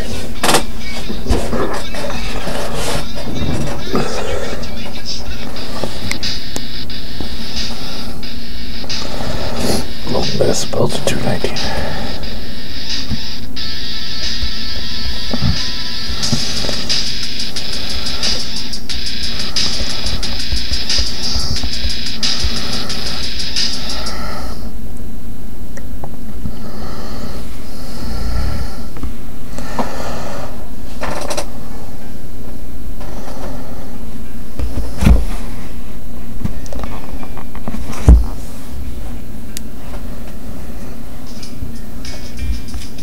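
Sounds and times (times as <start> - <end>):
loud distorted television music: 0.0 - 43.0.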